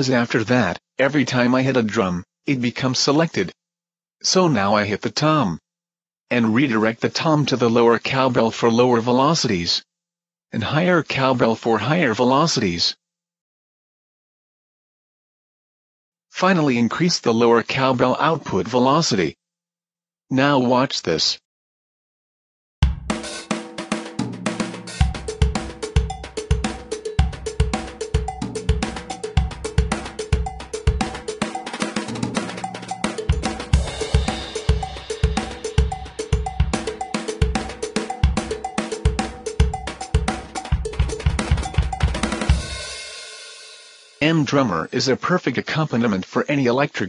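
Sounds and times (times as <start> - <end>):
drum kit groove: 22.8 - 44.2.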